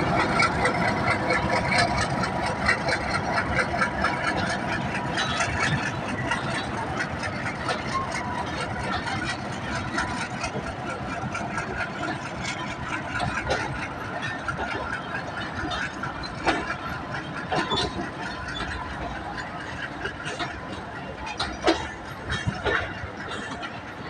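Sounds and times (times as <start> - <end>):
train coaches rumbling past: 0.0 - 24.0
wheels clacking over rail joints: 0.0 - 24.0.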